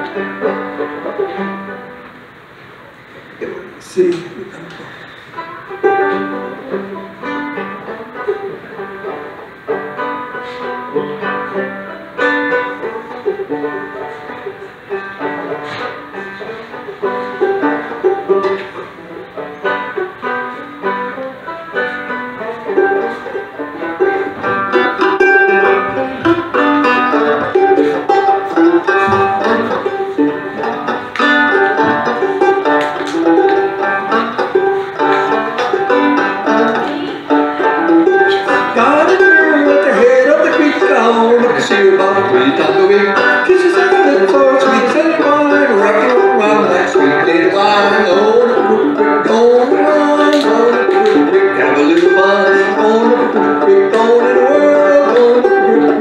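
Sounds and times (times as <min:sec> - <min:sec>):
banjo playing plucked notes: 0:00.0 - 0:56.0.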